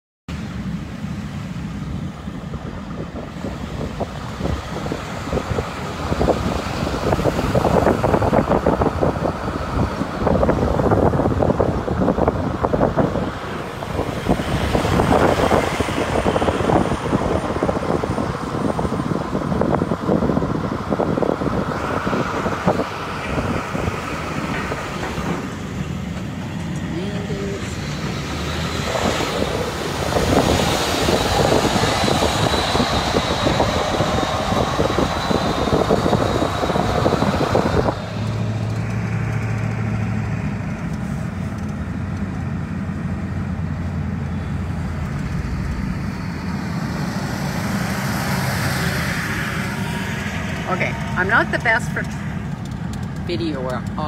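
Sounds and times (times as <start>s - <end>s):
vehicle road and engine noise: 0.3s - 54.0s.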